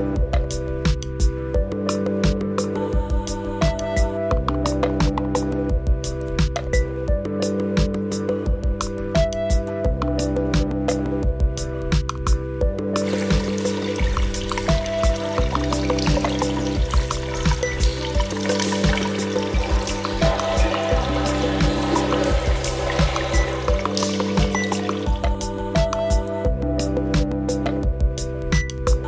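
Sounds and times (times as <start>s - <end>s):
instrumental background music: 0.0s - 29.0s
pouring water: 13.0s - 25.6s.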